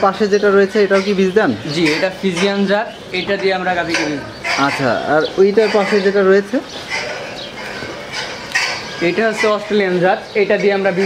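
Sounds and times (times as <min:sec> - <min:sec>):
man speaking: 0:00.0 - 0:07.1, 0:09.0 - 0:11.0
barn noise: 0:00.0 - 0:11.0.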